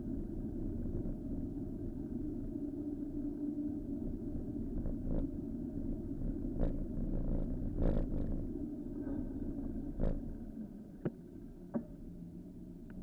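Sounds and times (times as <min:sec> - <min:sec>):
wind on microphone: 0:00.0 - 0:10.6.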